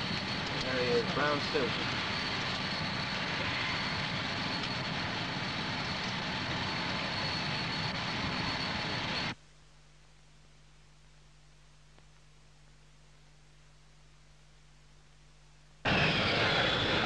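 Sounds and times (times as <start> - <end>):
aircraft engine whine: 0.0 - 9.4, 15.8 - 17.0.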